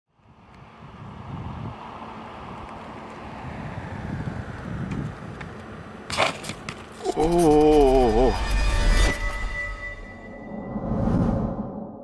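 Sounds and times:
wind noise on microphone: 0.2s - 1.9s, 3.4s - 5.6s.

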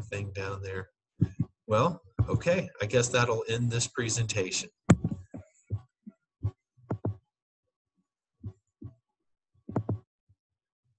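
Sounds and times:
soft handling thumps and clicks: 4.9s - 5.5s.

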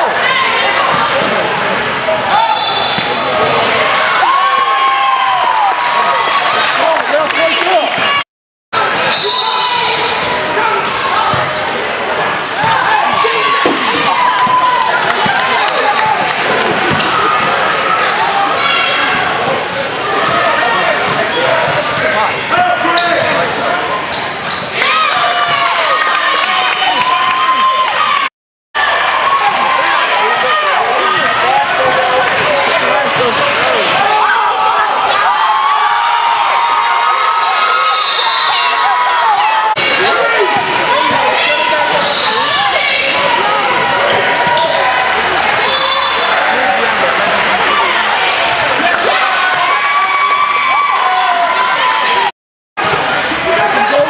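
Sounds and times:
sneakers squeaking: 2.4s - 3.5s, 15.2s - 19.6s, 20.2s - 24.8s, 40.5s - 43.2s.

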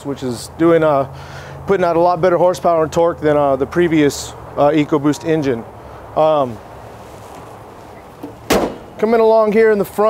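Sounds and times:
metal car hood slamming shut: 8.2s - 9.0s.

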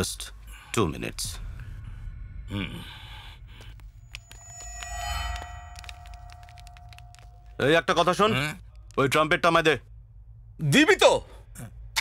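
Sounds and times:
low rumble: 0.5s - 8.4s
bell-like ringing tone: 4.0s - 8.1s.

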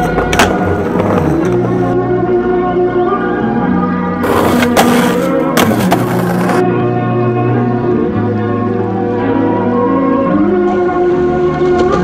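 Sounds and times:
skateboard clacks: 0.0s - 2.0s, 4.2s - 6.6s
skateboard scraping on concrete: 0.0s - 2.0s, 4.2s - 6.6s
background music: 0.0s - 12.0s.

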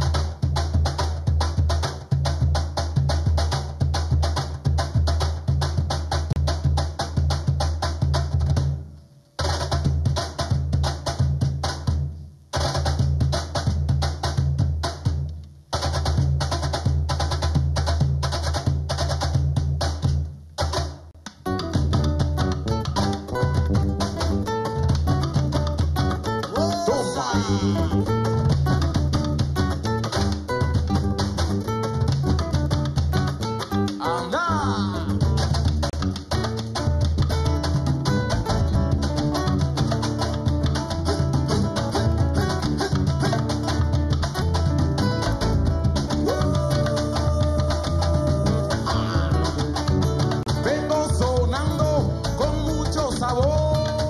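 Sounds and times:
hand drums playing fast rhythm: 0.0s - 54.0s
full band playing: 26.2s - 29.1s, 33.9s - 35.7s, 36.6s - 54.0s.

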